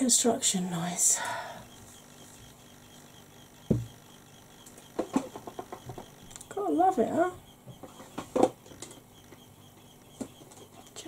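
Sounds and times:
dull thump: 0:03.7 - 0:04.0
small clicks and taps: 0:04.6 - 0:06.5.

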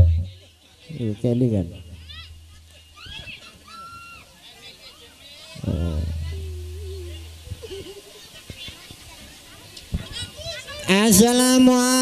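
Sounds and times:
low hum from sound system: 0:00.0 - 0:00.4, 0:05.6 - 0:07.6
audience and children's voices: 0:02.0 - 0:11.1
loud voice over pa: 0:10.9 - 0:12.0.

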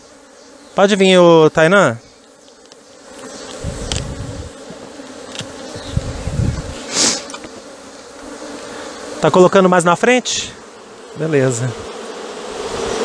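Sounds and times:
honeybees buzzing: 0:00.0 - 0:13.0
bee smoker puff of hissing air: 0:03.3 - 0:09.2.

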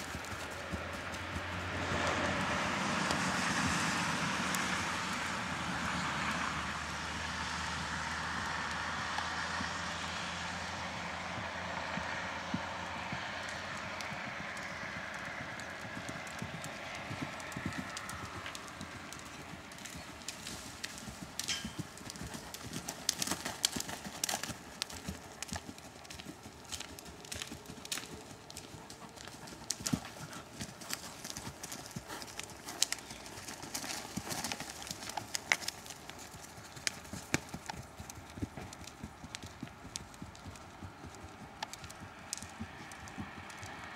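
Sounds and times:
horse hoofbeats on soft ground: 0:00.0 - 0:04.8, 0:08.3 - 0:43.9
passing vehicle rumble: 0:00.0 - 0:43.9.

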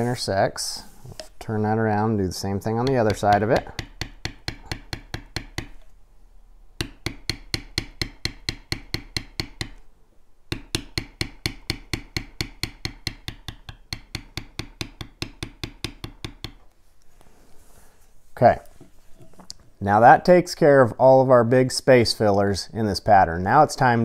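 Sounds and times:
maul tapping metal tool on leather: 0:02.8 - 0:05.9, 0:06.8 - 0:09.8, 0:10.5 - 0:16.7.

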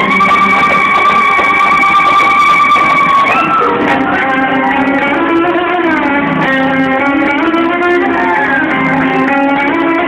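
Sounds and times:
live band music: 0:00.0 - 0:10.0
violin sliding notes: 0:00.0 - 0:10.0.

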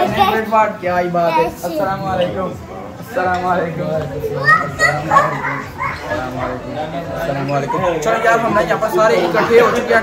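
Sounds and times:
boy talking: 0:00.0 - 0:02.1
people chattering: 0:00.0 - 0:10.0.

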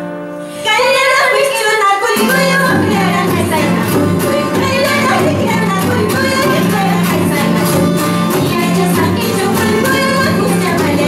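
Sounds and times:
acoustic guitars: 0:00.0 - 0:11.0
woman singing: 0:00.6 - 0:11.0.

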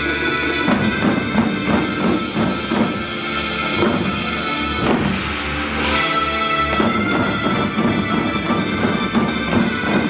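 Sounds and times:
taiko drums beating: 0:00.0 - 0:10.0.

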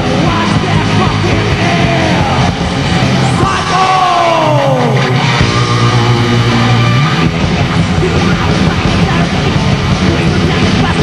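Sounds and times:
person singing: 0:00.0 - 0:02.6, 0:07.8 - 0:11.0
heavy metal band playing: 0:00.0 - 0:11.0.

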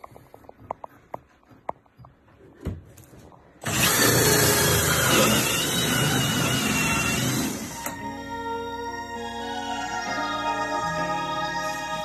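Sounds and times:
cordless drill with hole saw: 0:03.6 - 0:08.0.

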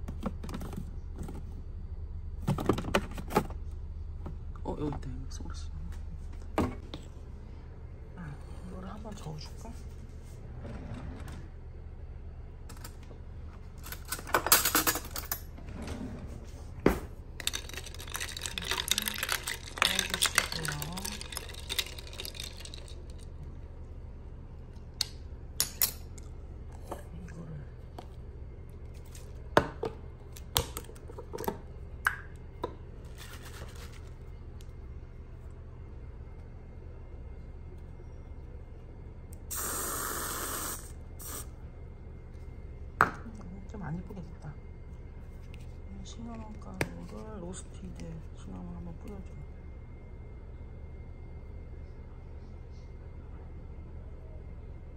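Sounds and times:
constant low hum: 0:00.0 - 0:54.9
ice clinking in glass pitcher: 0:17.4 - 0:23.2
whipped cream can hissing: 0:39.5 - 0:41.5.

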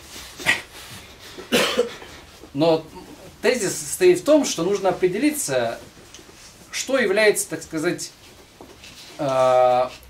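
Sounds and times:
person coughing: 0:01.5 - 0:02.2.

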